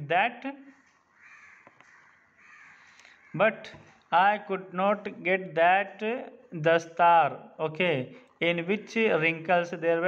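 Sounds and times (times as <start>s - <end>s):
faint bird calls: 0.7s - 3.4s.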